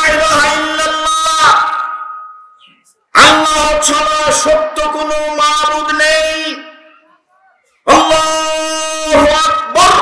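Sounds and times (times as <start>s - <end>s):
man chanting through microphones: 0.0s - 1.9s, 3.1s - 6.8s, 7.8s - 10.0s.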